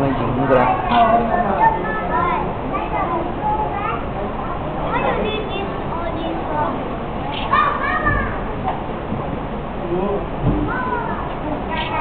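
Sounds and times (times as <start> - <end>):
visitors chatter: 0.0 - 12.0.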